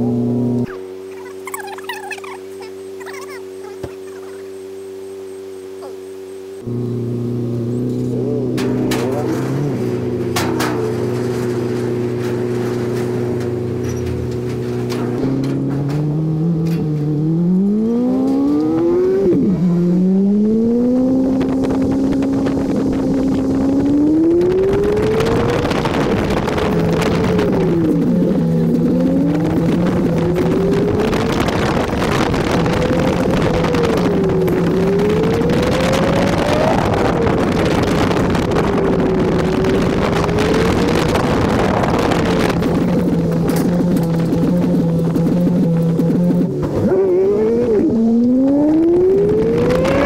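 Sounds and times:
car engine revving: 0.0 - 50.0
wind rushing over microphone: 8.4 - 50.0.

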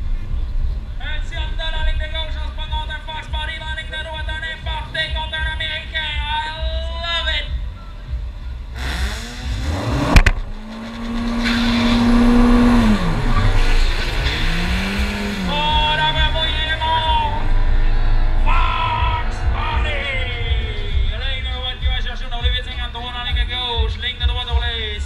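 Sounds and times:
car engine revving: 8.2 - 23.8
sharp crack: 10.0 - 16.8.

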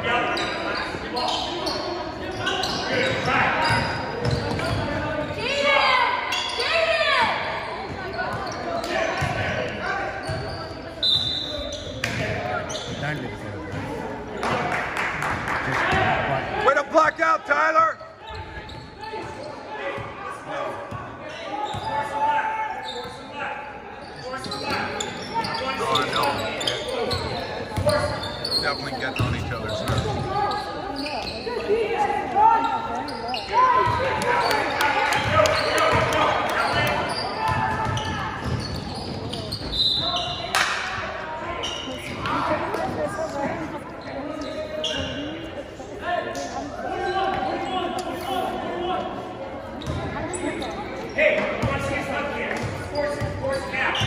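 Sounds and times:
crowd noise: 0.0 - 54.0
voices of spectators and players: 0.0 - 54.0
basketball bouncing on court: 4.2 - 5.0, 29.2 - 30.3, 35.2 - 39.8, 49.8 - 50.1.

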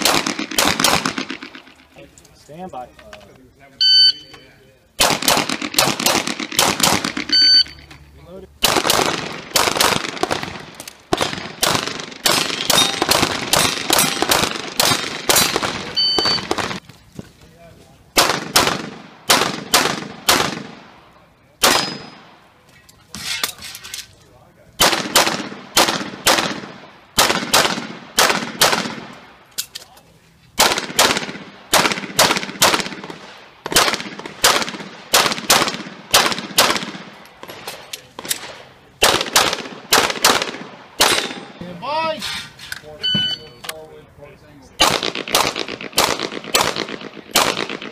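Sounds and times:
shot timer beeps: 3.8 - 4.4, 7.3 - 7.9, 16.0 - 16.5, 43.0 - 43.6
handgun fire: 11.2 - 16.7, 38.3 - 41.5, 44.8 - 47.9.

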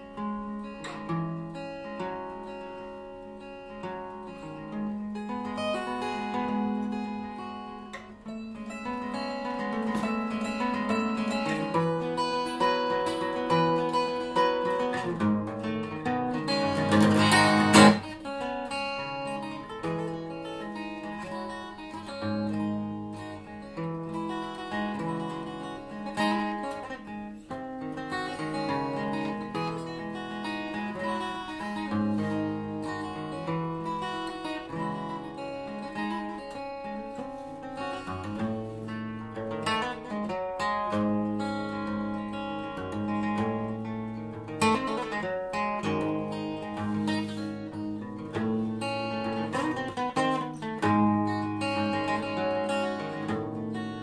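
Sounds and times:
acoustic guitar picking: 0.0 - 54.0.

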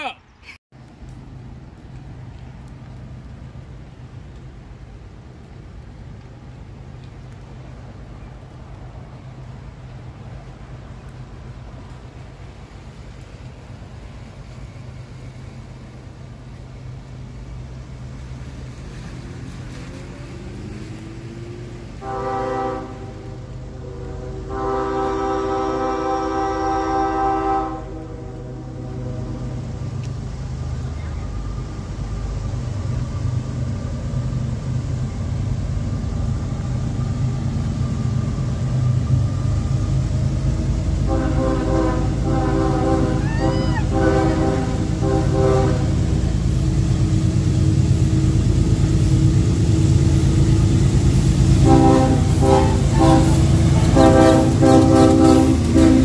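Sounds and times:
diesel engine rumble: 0.7 - 56.0
locomotive air horn: 22.0 - 29.8, 41.0 - 46.1, 51.5 - 56.0.

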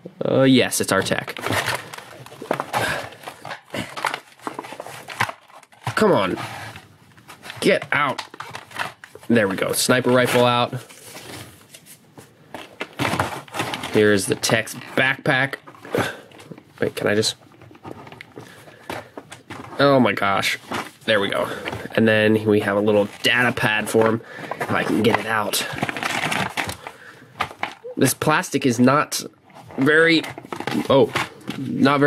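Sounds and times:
plastic packaging crinkling: 0.8 - 27.9, 29.5 - 32.0.

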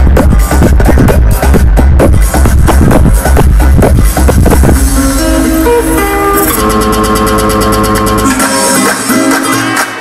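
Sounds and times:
kick drum beat: 0.0 - 5.0
plucked guitar-like melody: 5.0 - 9.6.

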